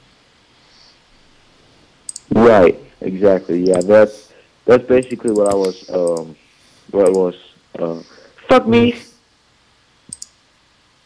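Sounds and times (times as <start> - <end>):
sharp clicks: 2.1 - 2.4, 3.6 - 4.0, 5.0 - 6.3, 7.0 - 7.2, 10.1 - 10.4.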